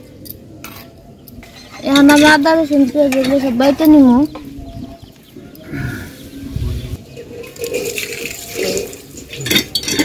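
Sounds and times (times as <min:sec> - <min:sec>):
water sloshing in steel bowl: 0:07.0 - 0:10.0.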